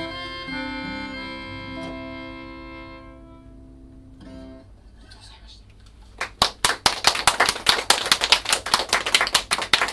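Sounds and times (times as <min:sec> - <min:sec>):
audience applauding: 0:06.1 - 0:09.9.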